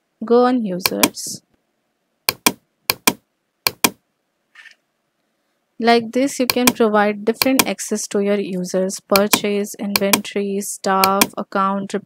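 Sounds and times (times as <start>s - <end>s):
computer mouse button clicking: 0.8s - 1.2s, 2.3s - 4.0s, 6.5s - 6.8s, 7.4s - 7.7s, 9.1s - 10.3s, 11.0s - 11.4s.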